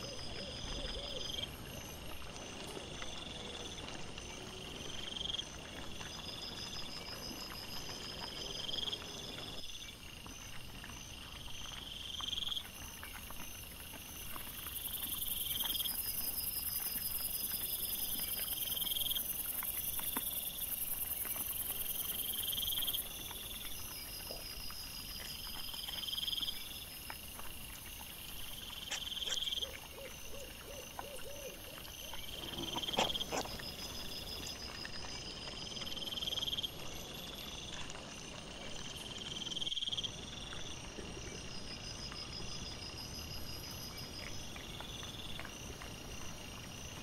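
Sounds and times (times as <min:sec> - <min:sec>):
crickets chirping: 0:00.0 - 0:47.0.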